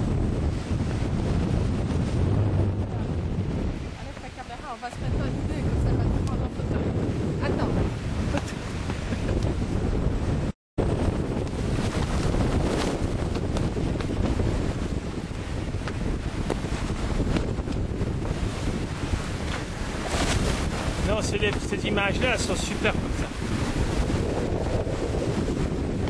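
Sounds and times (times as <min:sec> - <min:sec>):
sea water rushing along hull: 0:00.0 - 0:26.0
wind buffeting microphone: 0:00.0 - 0:26.0.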